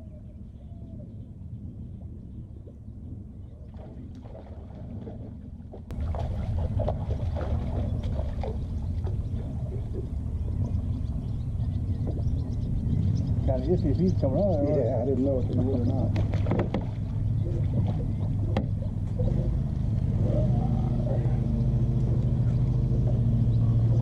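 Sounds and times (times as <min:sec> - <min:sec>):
wind: 0:00.0 - 0:24.0
water lapping: 0:02.0 - 0:24.0
water splashing: 0:03.6 - 0:11.2, 0:14.9 - 0:24.0.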